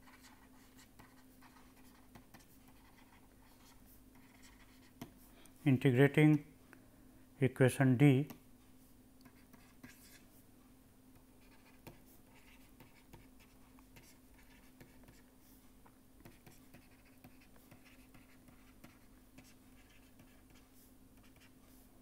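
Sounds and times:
stylus scratching on pen tablet: 0.0 - 5.2, 9.2 - 10.3, 11.4 - 15.3, 16.2 - 21.8.

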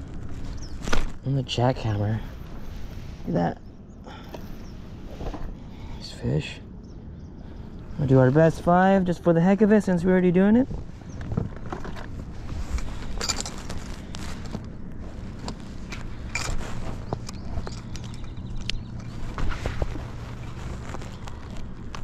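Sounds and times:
steady low hum: 0.0 - 22.0
fishing gear knocks and clicks: 11.1 - 14.7, 15.3 - 22.0.

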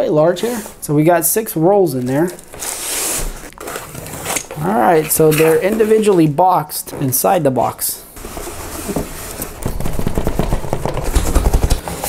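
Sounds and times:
cardboard boxes scraping: 2.2 - 6.3, 8.2 - 12.0
rapid irregular knocks: 8.3 - 12.0.

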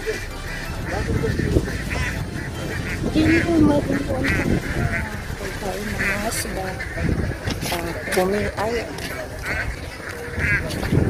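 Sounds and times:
ducks quacking: 0.0 - 11.0.

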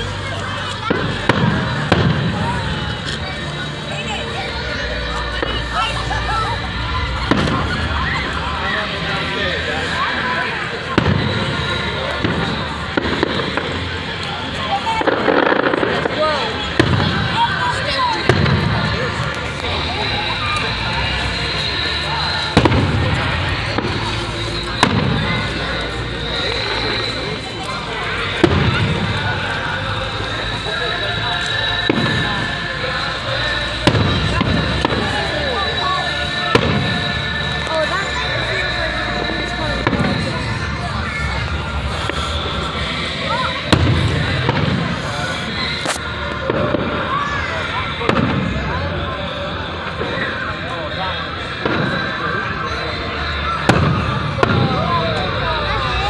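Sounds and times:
fireworks bangs with low rumble: 0.0 - 3.8, 5.2 - 50.3, 51.4 - 52.7, 53.3 - 56.0.

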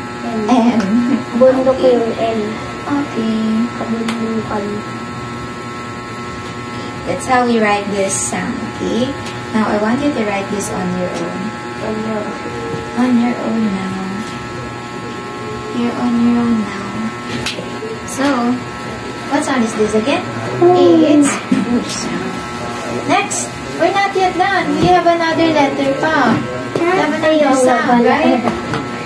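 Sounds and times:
buzzing electrical hum: 0.0 - 29.0
woman speaking: 0.2 - 4.9, 7.0 - 14.4, 15.7 - 18.7, 19.3 - 22.4, 23.0 - 28.6.

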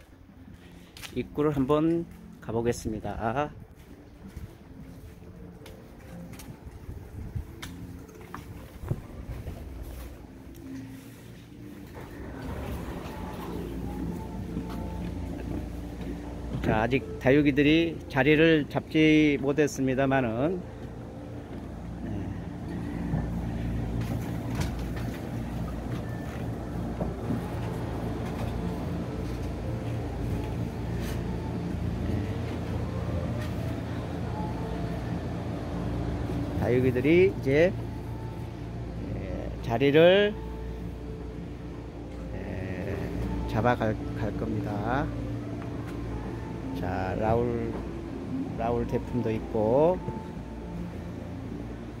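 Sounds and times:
low mechanical hum: 0.0 - 52.0.

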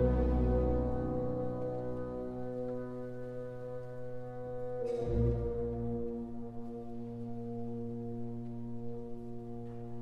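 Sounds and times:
french horns and winds chord: 0.0 - 10.0.

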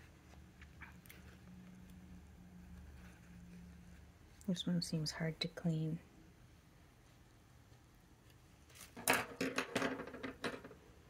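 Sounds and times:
small objects clinking on a table: 8.9 - 10.8.

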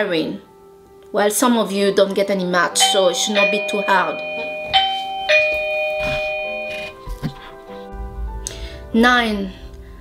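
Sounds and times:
soft background music: 0.0 - 10.0
bell-like chime notes: 2.8 - 7.0.

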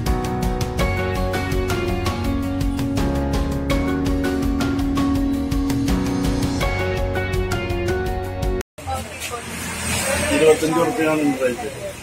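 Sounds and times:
plucked background music: 0.0 - 8.6
busy shop murmur: 8.8 - 12.0
voices: 8.8 - 12.0.

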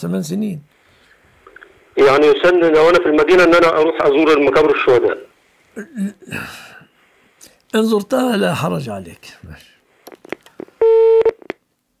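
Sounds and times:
busy tone beep: 10.8 - 11.4.

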